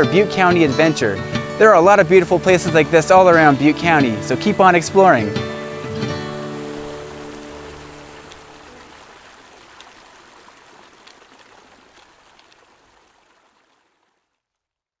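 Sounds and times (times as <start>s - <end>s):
acoustic guitar chord ringing: 0.0s - 8.8s
creek water rushing: 0.0s - 14.2s.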